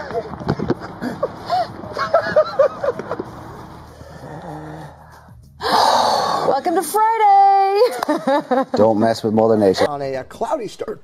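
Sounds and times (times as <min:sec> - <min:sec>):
woman's loud breathy laughter: 0:00.2 - 0:03.2.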